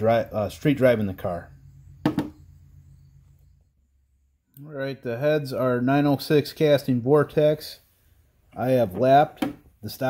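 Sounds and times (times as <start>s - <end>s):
quick knocks: 2.0s - 2.4s.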